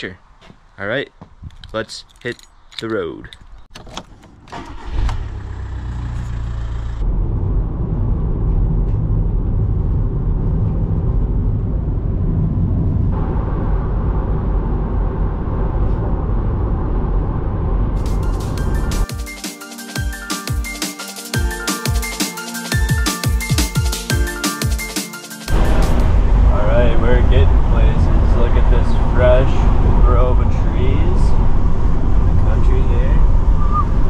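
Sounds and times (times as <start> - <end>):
engine and road noise: 0.0 - 19.1, 25.5 - 34.0
van engine starting: 3.7 - 7.4
electronic music with a beat: 18.0 - 26.1.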